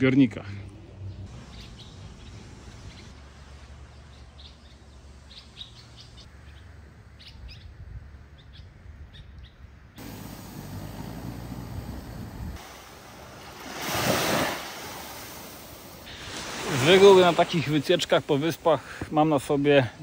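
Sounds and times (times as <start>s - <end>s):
small birds chirping: 1.0s - 12.6s
steady low rumble: 10.0s - 13.6s
loud swell of noise: 10.0s - 16.0s.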